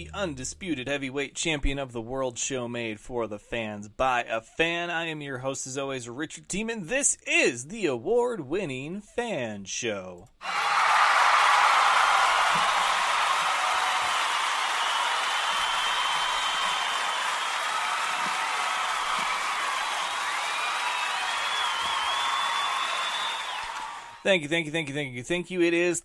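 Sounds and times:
crowd applause and cheering: 10.4 - 24.2
whistles: 14.0 - 24.2.

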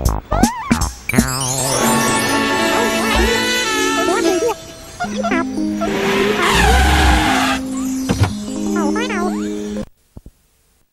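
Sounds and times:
light background music: 0.4 - 9.9
falling cartoon screech: 1.3 - 4.6, 5.8 - 7.8.

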